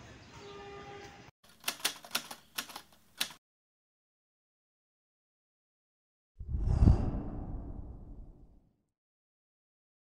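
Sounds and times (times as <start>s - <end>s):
typewriter keys clacking: 1.5s - 3.4s.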